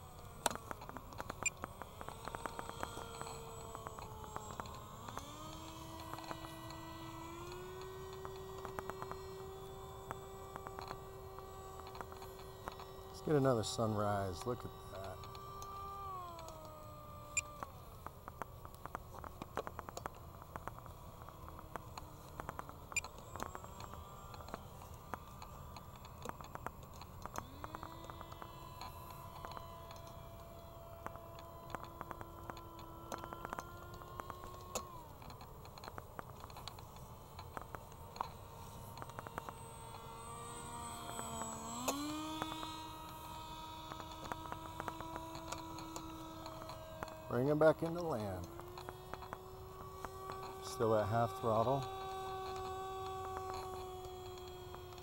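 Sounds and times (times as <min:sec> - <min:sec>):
model plane motor whine: 0:00.0 - 0:55.0
small clicks: 0:00.0 - 0:55.0.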